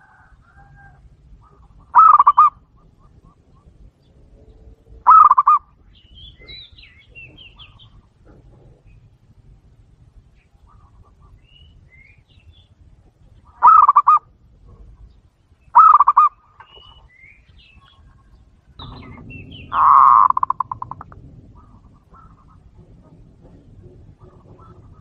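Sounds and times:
dove cooing: 0.0 - 3.9, 4.9 - 5.7, 13.5 - 15.0, 15.7 - 16.9, 18.8 - 25.0
small birds twittering: 0.6 - 9.4, 10.2 - 25.0.

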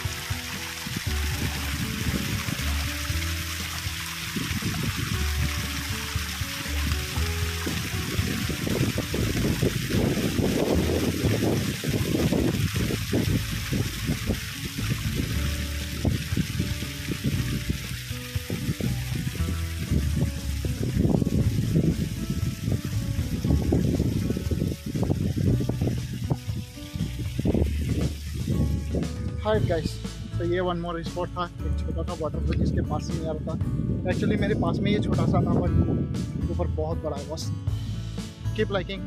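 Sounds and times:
stream rushing over rocks: 0.0 - 22.7
background music: 0.0 - 39.0.

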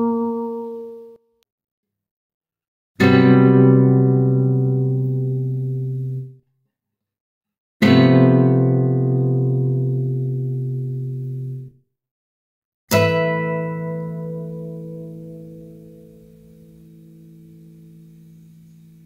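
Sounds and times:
classical guitar chords ringing: 0.0 - 1.2, 3.0 - 6.4, 7.8 - 11.7, 12.9 - 19.0.

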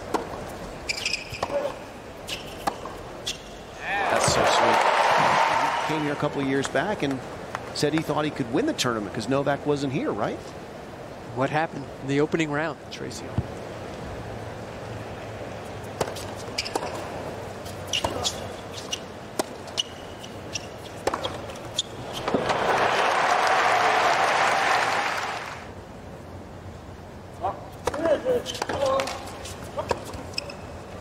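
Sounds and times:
tennis ball bouncing: 2.4 - 3.0, 15.9 - 22.7
crowd cheering and applause: 3.8 - 6.2, 22.3 - 25.7
racket striking ball: 21.0 - 21.4.

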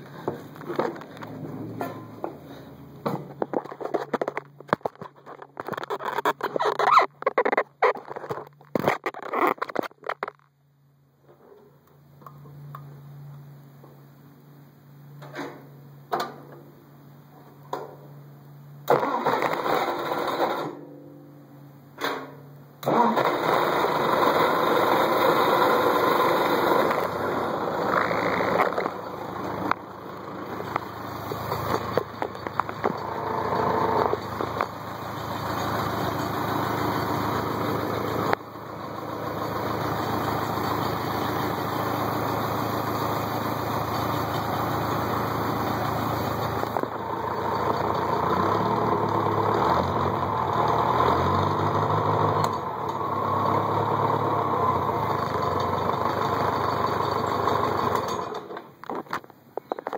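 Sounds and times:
tractor engine running: 0.0 - 11.0, 14.8 - 59.9.

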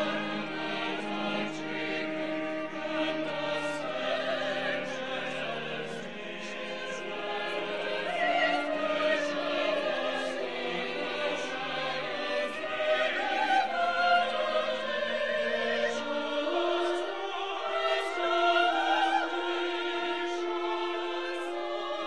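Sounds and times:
church choir singing held chords: 0.0 - 22.0
strings: 0.0 - 22.0.

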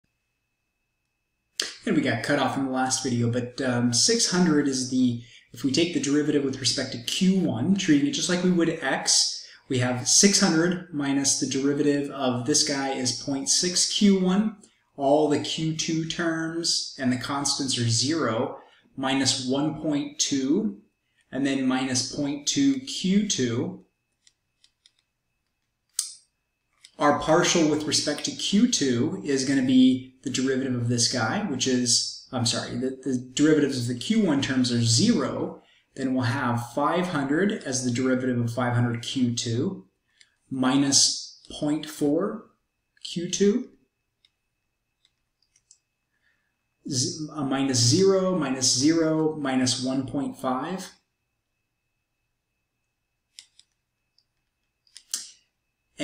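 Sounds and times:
man speaking: 1.6 - 23.8, 26.9 - 39.9, 40.5 - 43.8, 46.8 - 51.0.

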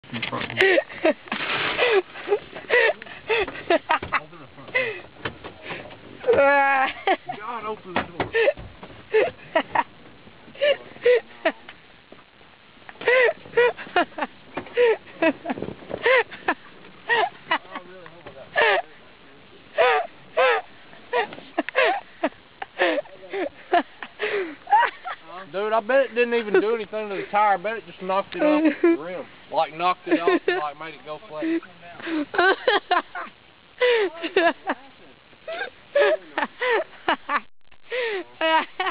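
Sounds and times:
person laughing: 0.6 - 5.0, 8.3 - 9.9, 10.6 - 11.6, 13.0 - 18.9, 19.8 - 25.3, 31.4 - 38.9.

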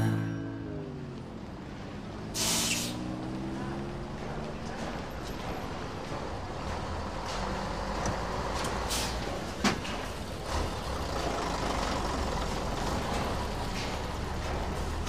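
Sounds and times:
traffic rumble: 0.0 - 15.0.

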